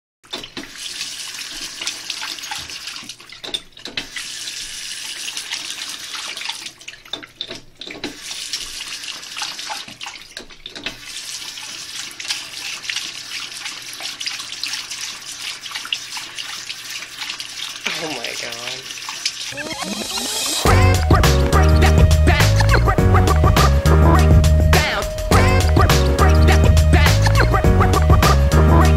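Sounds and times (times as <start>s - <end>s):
faucet running: 0.2s - 28.9s.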